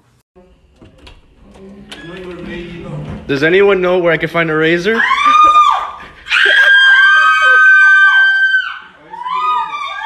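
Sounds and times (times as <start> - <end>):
woman screaming: 5.0 - 10.0.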